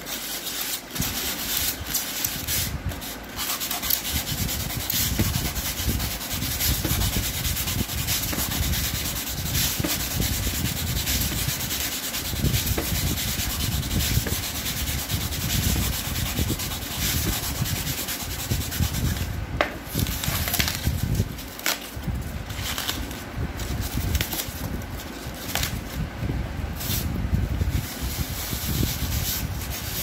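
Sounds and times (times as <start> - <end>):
knife cutting polystyrene foam: 0.0 - 26.0.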